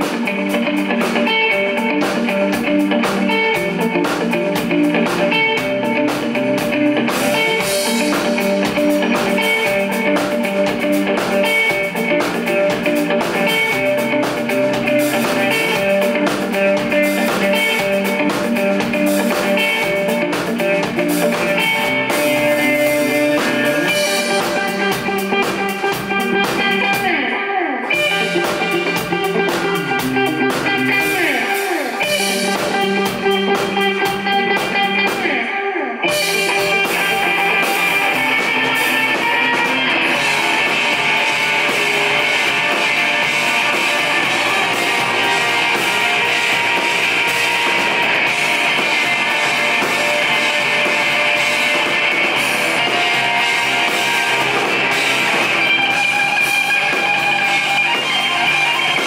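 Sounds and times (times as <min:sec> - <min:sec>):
drum kit: 0:00.0 - 0:59.0
electric guitar: 0:00.0 - 0:59.0.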